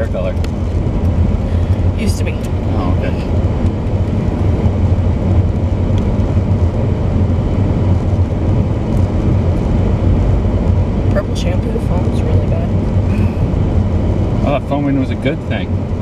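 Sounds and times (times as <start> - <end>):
car interior road rumble: 0.0 - 16.0.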